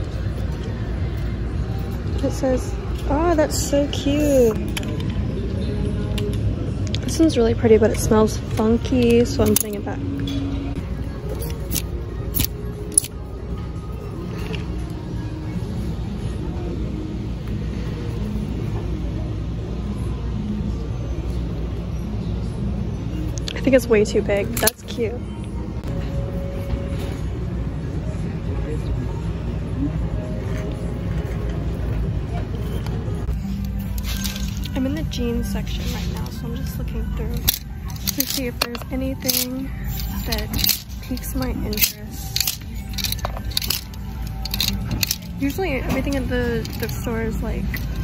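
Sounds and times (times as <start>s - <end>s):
background music: 0.0s - 20.2s, 20.8s - 48.0s
faint voices: 0.0s - 48.0s
store background rumble: 0.0s - 48.0s
plastic hangers clicking on rack: 35.8s - 48.0s.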